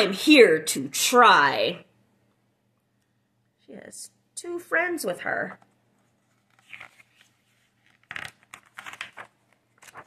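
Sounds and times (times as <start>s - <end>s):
paper page rustling: 6.0s - 10.0s.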